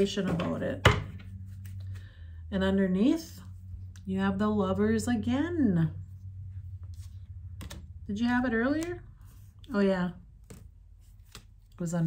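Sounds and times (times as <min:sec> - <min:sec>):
steady low hum: 0:00.0 - 0:12.0
cards clicking and tapping: 0:07.5 - 0:07.9, 0:10.4 - 0:11.8.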